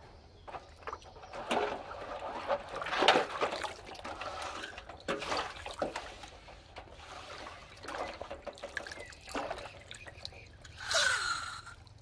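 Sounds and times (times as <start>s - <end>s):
water sloshing in metal basin: 0.5s - 12.0s.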